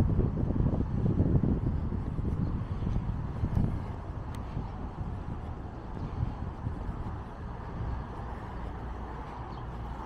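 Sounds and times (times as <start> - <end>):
cars passing on road: 0.0 - 10.0.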